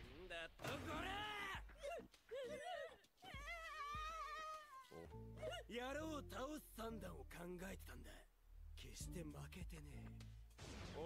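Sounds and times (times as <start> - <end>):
child wailing: 1.1 - 5.6.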